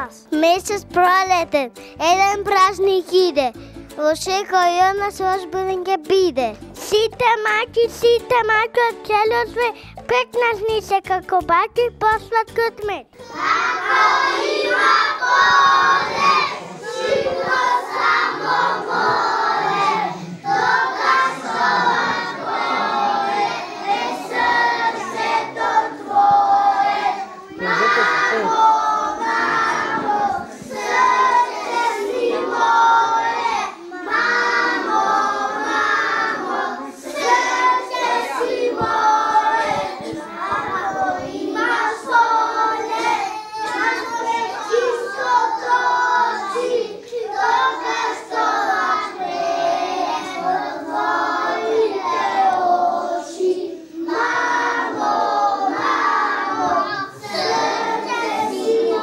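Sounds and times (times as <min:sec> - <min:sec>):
children singing in chorus: 0:13.2 - 0:59.0.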